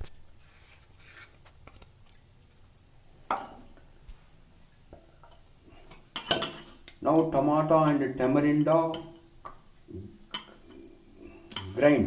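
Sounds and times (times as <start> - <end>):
metal kitchenware clinking: 3.0 - 12.0.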